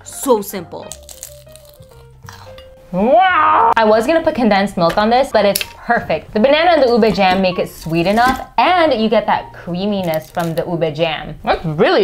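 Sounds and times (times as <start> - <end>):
soft background music: 0.0 - 12.0
crunchy bite into spring roll: 1.0 - 2.4.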